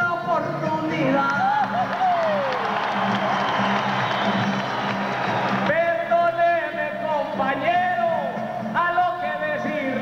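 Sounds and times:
acoustic guitar strumming: 0.0 - 10.0
crowd cheering and applauding: 1.2 - 6.2.

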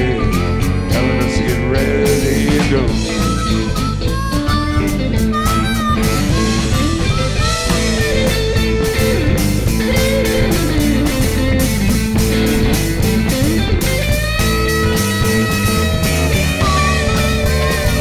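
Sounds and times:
blues band playing: 0.0 - 18.0
electric slide guitar lead: 0.0 - 18.0.

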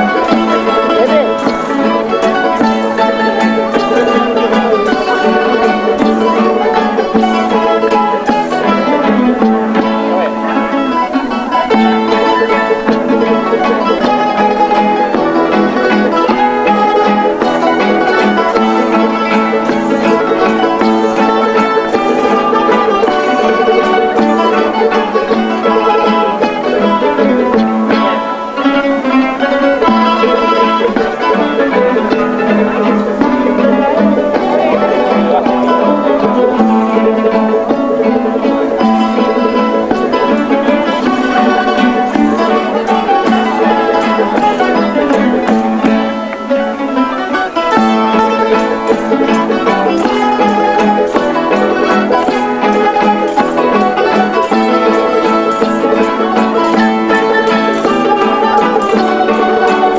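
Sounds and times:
folk string group playing: 0.0 - 59.9.

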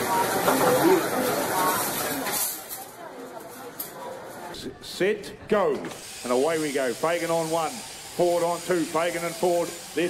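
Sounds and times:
clatter at a service counter: 0.0 - 4.6.

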